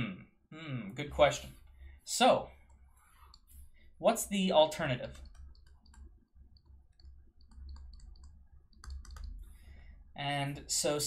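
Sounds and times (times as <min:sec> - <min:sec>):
low steady hum: 0:00.0 - 0:11.0
stylus tapping on pen tablet: 0:05.2 - 0:09.4.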